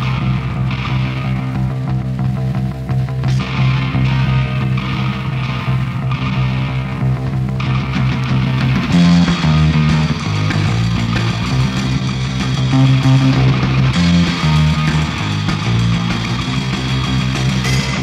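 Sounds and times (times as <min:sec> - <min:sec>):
held bass guitar notes: 0:00.0 - 0:18.0
punk rock band playing: 0:00.0 - 0:18.0.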